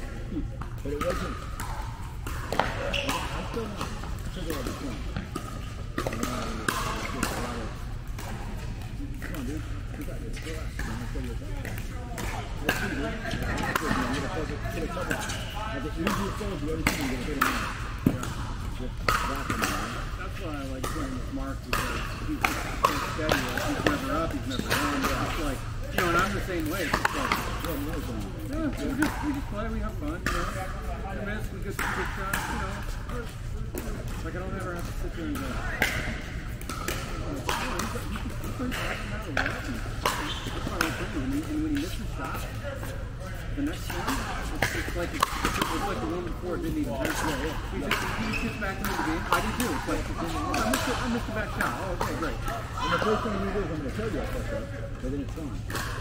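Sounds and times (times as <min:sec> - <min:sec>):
ball bouncing on court: 0:00.6 - 0:42.9, 0:43.6 - 0:56.0.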